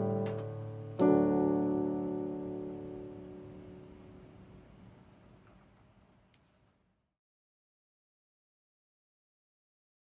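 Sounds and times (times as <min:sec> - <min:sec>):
piano chord ringing: 0:00.0 - 0:04.6
faint click: 0:05.4 - 0:06.6.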